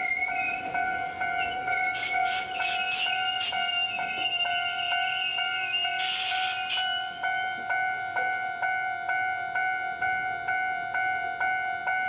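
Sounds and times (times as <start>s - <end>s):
level-crossing warning bell ringing: 0.0s - 12.0s.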